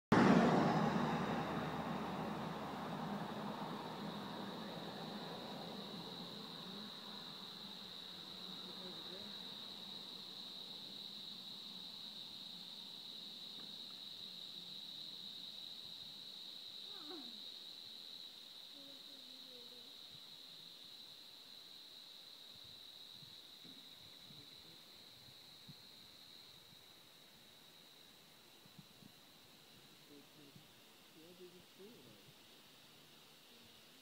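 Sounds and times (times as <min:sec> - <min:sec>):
car passing: 0:00.1 - 0:10.4
high-pitched insect drone: 0:00.2 - 0:34.0
faint steady high tone: 0:18.7 - 0:20.1.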